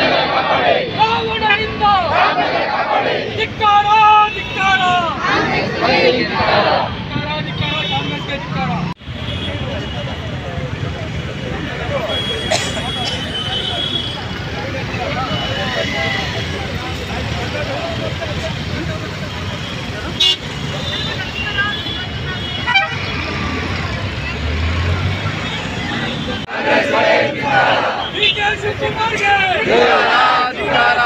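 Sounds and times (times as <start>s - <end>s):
steady traffic: 0.0s - 31.0s
people talking: 3.3s - 22.6s, 27.4s - 31.0s
vehicle horns tooting: 11.9s - 16.8s, 19.4s - 23.4s, 27.6s - 29.7s.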